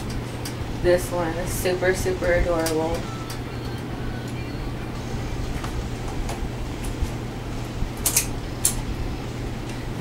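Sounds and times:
low hum of room noise: 0.0s - 10.0s.

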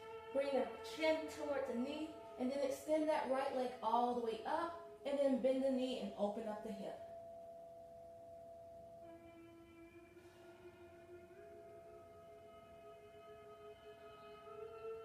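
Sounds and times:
slow ambient music: 0.0s - 15.0s.

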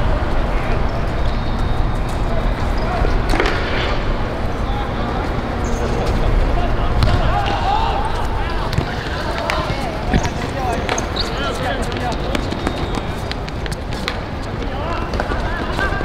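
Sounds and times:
players shouting: 0.0s - 13.3s
ball being kicked: 7.0s - 7.3s.

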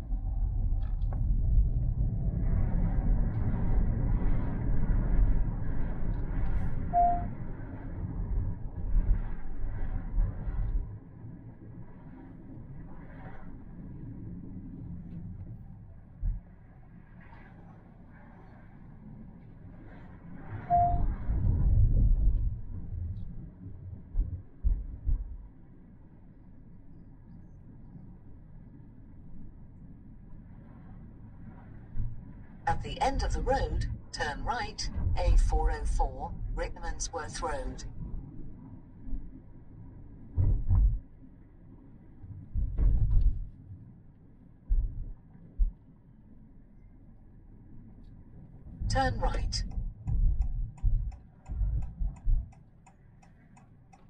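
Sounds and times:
short beeps: 6.9s - 7.3s, 20.7s - 21.1s
car rumbling while moving: 48.7s - 52.6s.

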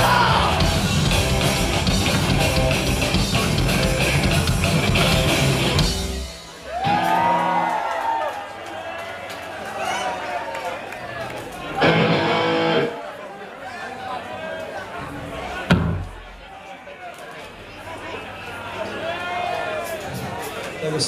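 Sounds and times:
punk band playing loud: 0.0s - 7.7s, 11.8s - 12.9s
crowd cheering and shouting: 0.0s - 13.5s
electric guitar chord ringing: 11.8s - 12.9s.

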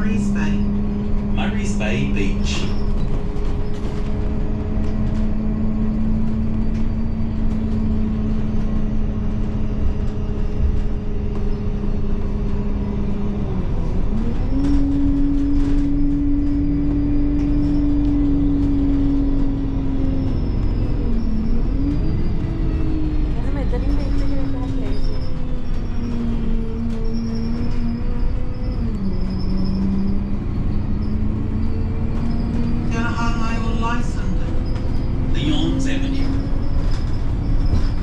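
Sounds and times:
bus driving interior rumble: 0.0s - 38.0s.

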